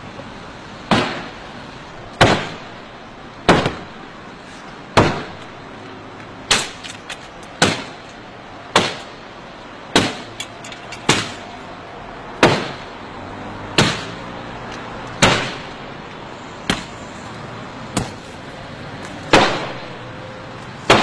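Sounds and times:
heavy blows on car bodywork: 2.1 - 2.8, 3.4 - 4.1, 4.9 - 5.5.

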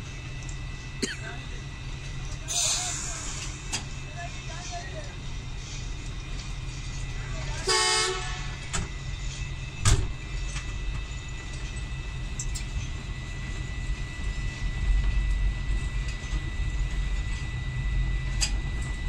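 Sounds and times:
locomotive engine rumble: 0.0 - 19.0
locomotive horn blast: 7.6 - 8.8.

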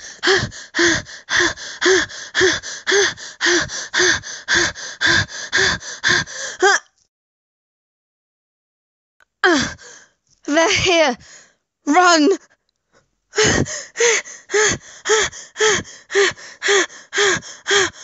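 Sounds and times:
woman panting: 0.0 - 6.7, 9.4 - 11.6, 13.3 - 18.0.

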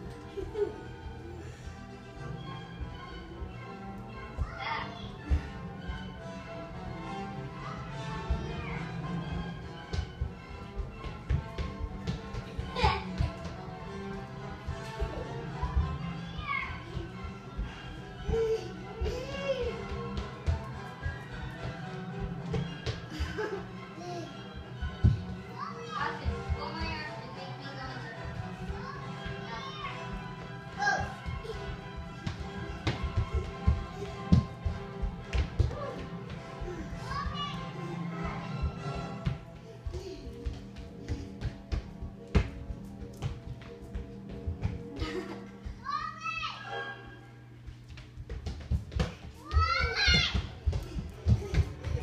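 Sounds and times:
footsteps on wooden floor: 0.0 - 45.9, 47.6 - 52.0
young children playing: 0.0 - 47.8, 48.5 - 52.0
background music: 0.0 - 52.0
small children's voices playing: 4.0 - 5.5, 7.4 - 9.1, 15.5 - 17.4, 25.4 - 33.8, 35.7 - 38.7, 45.7 - 47.1, 49.4 - 50.6.

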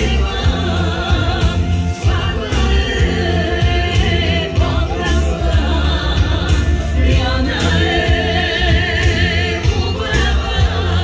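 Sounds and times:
heavy bass beat: 0.0 - 11.0
lead singer: 0.0 - 11.0.

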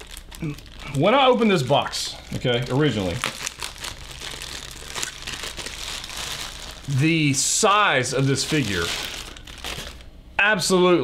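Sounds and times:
plastic bag crinkling: 0.0 - 10.1.

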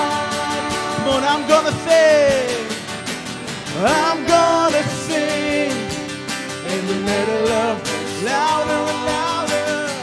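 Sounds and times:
people singing: 0.0 - 2.8, 3.7 - 10.0
acoustic guitar: 0.0 - 10.0
drums: 0.0 - 10.0
keyboard: 0.0 - 10.0.

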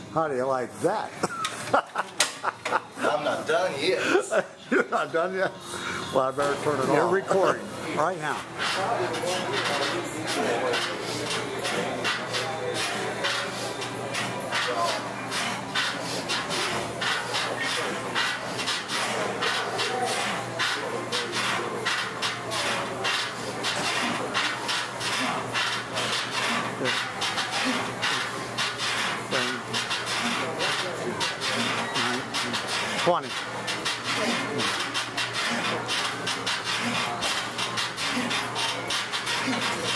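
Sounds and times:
indistinct voices: 5.6 - 39.9.

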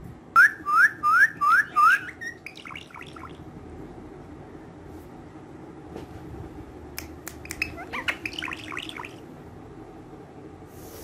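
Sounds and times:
parakeet chattering: 1.0 - 3.4, 7.3 - 9.3.

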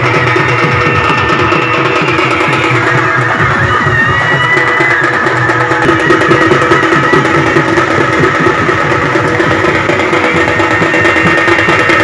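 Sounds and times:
fast dense drumming: 0.0 - 12.0.

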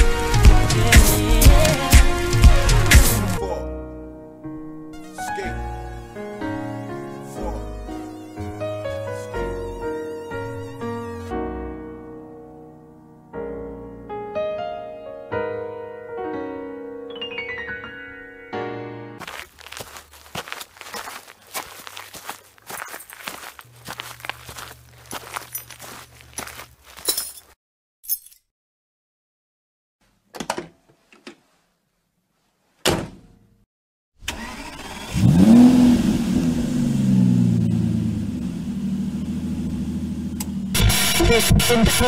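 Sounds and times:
car engine starting and idling: 34.2 - 42.0.

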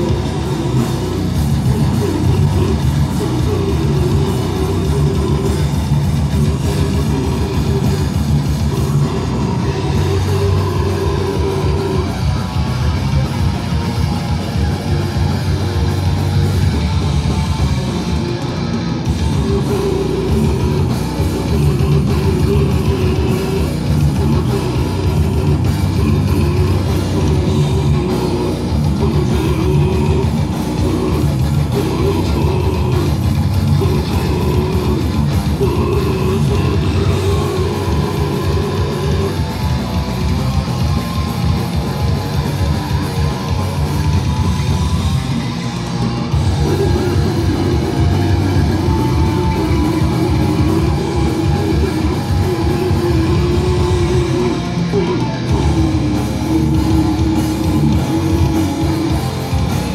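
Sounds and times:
bass guitar: 0.0 - 59.9
distorted electric guitars: 0.0 - 59.9
drum kit: 0.0 - 59.9
harsh vocals: 0.0 - 59.9.

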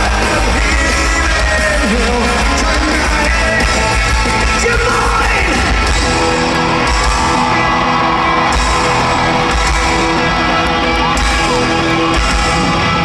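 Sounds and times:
person singing: 0.0 - 5.8
crowd yelling: 0.0 - 13.0
drums: 0.0 - 13.0
live rock band: 0.0 - 13.0.

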